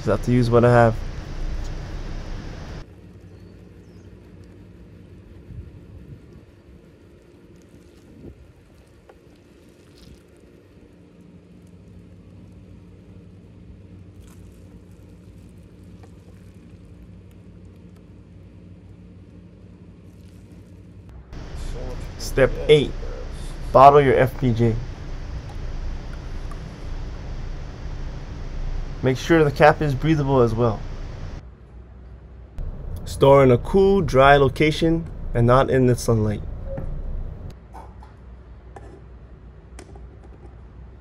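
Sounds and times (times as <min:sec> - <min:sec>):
low steady hum: 0:00.0 - 0:31.9, 0:32.5 - 0:37.6
hiss: 0:00.7 - 0:02.8, 0:21.4 - 0:31.4.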